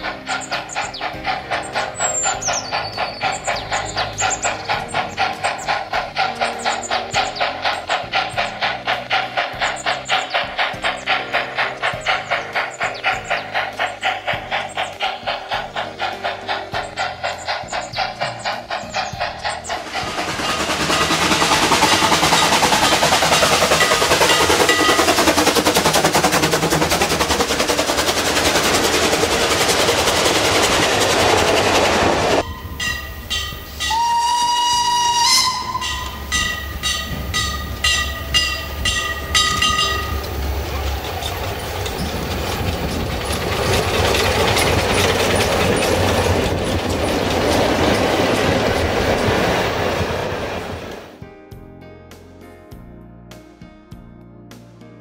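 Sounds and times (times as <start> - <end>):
steam rushing: 0.0 - 51.2
steam train chuffing: 0.0 - 51.2
wheel clatter: 0.0 - 51.2
steam whistle blasts: 32.4 - 40.2.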